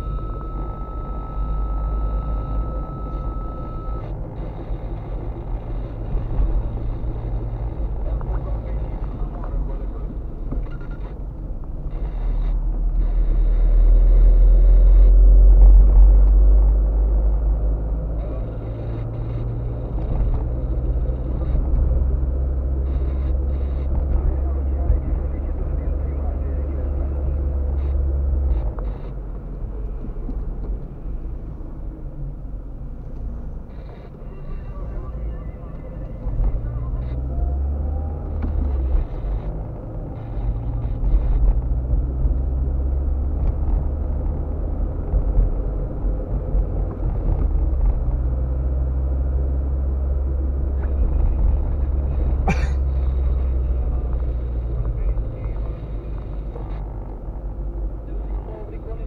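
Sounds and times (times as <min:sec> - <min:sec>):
car engine and tyres rumbling: 0:00.0 - 0:59.0.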